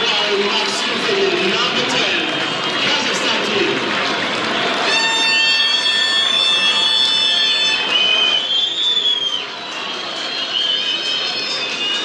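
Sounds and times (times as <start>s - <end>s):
long shrill whistle blast: 4.8s - 12.0s.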